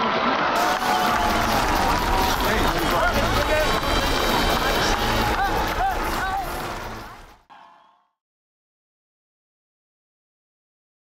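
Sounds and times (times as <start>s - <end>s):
crowd cheering and shouting: 0.0s - 8.0s.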